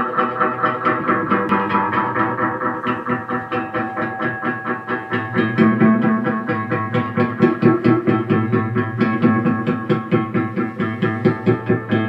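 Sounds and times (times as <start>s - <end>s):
electric guitar picked notes with delay: 0.0s - 12.0s.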